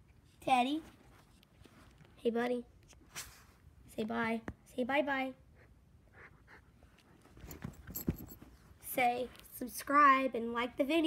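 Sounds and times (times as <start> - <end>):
small dog panting: 5.5 - 7.6.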